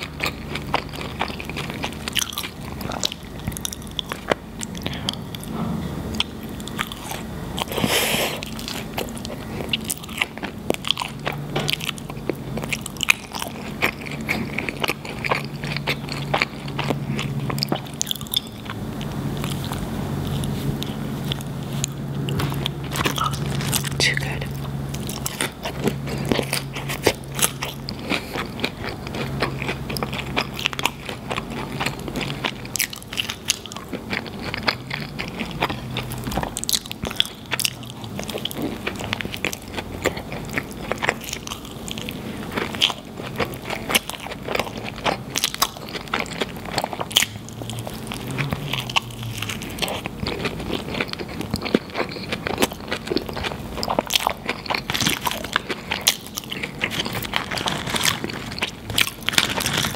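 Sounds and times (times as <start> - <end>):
biting and chewing: 0.0 - 59.9.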